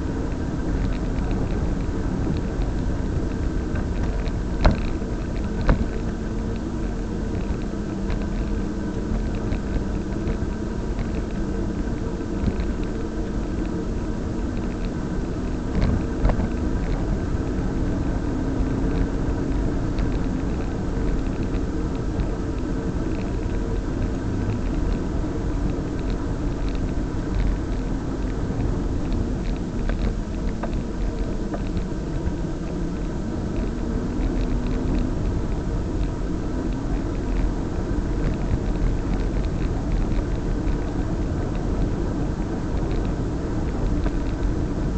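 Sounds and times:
faint droning hum: 0.0s - 44.9s
wind: 0.0s - 44.9s.

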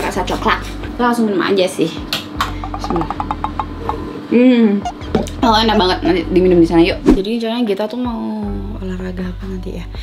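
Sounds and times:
person humming: 4.3s - 5.8s.

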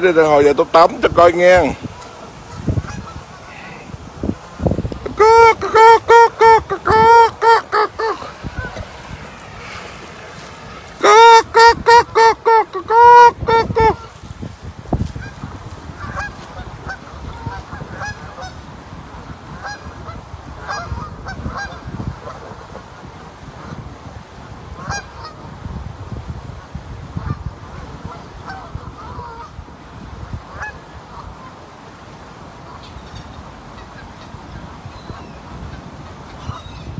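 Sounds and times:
geese honking: 1.9s - 3.7s, 5.0s - 14.2s, 15.2s - 18.6s, 19.5s - 22.8s, 24.8s - 25.4s, 28.0s - 29.6s, 30.5s - 31.5s.

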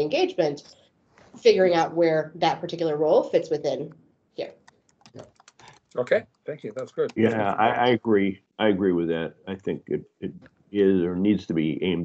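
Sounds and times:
murmur of a voice: 6.0s - 12.0s.

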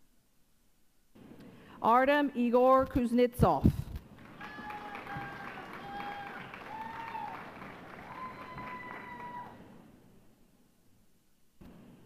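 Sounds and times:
audience applause: 4.1s - 9.6s
long high calls: 4.4s - 9.6s.

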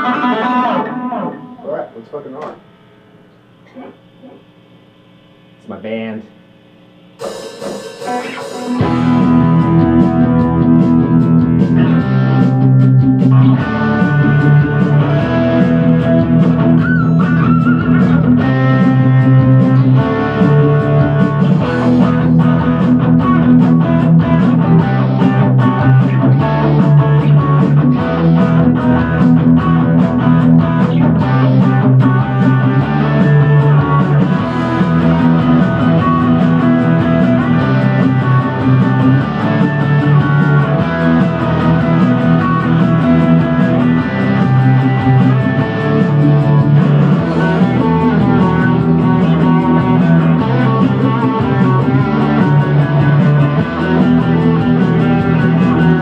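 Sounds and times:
rock backing track with drums: 0.0s - 1.8s, 7.0s - 56.0s
electric guitar lead: 0.0s - 3.0s, 7.2s - 56.0s.

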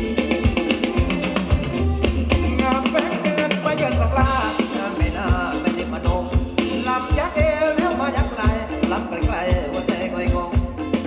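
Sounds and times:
drum kit with kick-drum beat: 0.0s - 11.0s
electric guitar: 0.0s - 11.0s.

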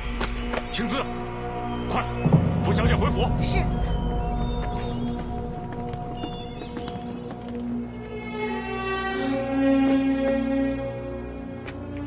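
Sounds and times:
dramatic score sustained notes: 0.0s - 12.0s.

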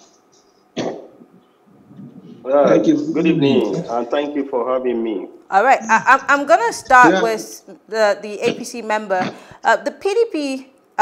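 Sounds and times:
person coughing: 0.8s - 1.1s.

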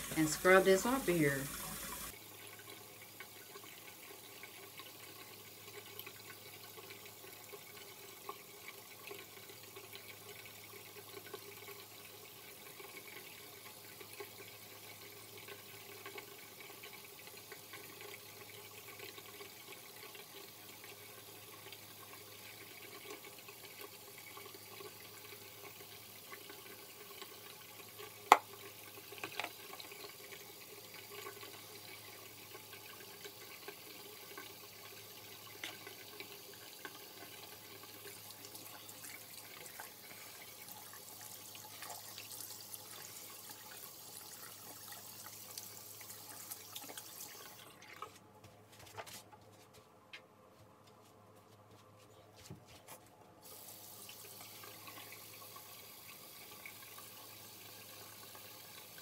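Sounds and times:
water running from tap: 0.0s - 48.1s, 53.4s - 59.0s.

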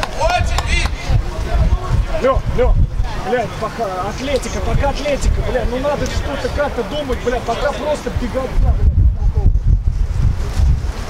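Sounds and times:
steady low rumble: 0.0s - 6.4s, 8.1s - 11.0s
men shouting: 0.0s - 8.6s.

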